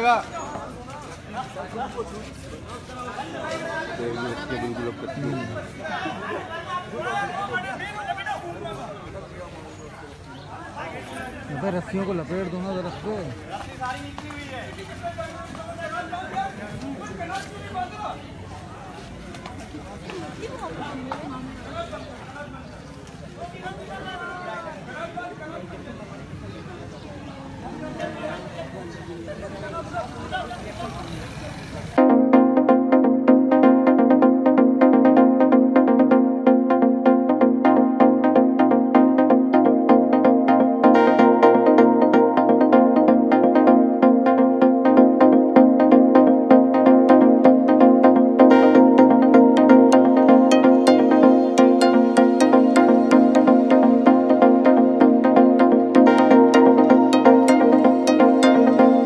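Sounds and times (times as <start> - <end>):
people chattering: 0.0 - 32.0, 37.3 - 59.0.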